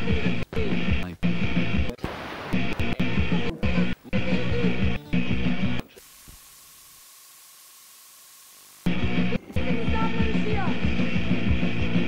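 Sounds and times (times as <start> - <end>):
tape static hiss: 0.0 - 12.0.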